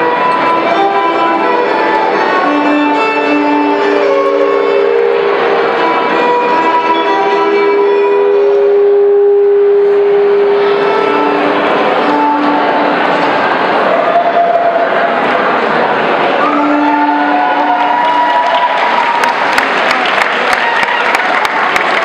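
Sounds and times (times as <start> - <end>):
solo violin playing slow tune: 0.0 - 13.5, 16.4 - 18.0.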